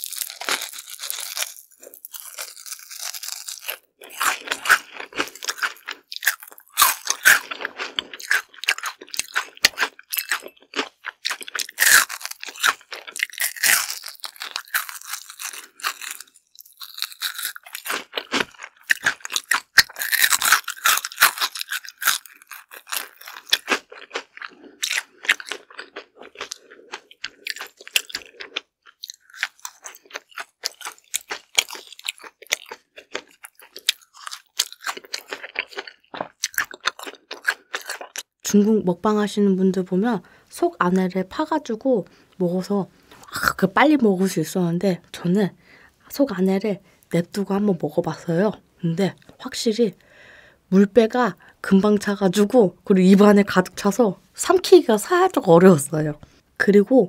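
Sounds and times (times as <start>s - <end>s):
chewing: 0.0s - 38.3s
crunching of fried food: 0.0s - 38.4s.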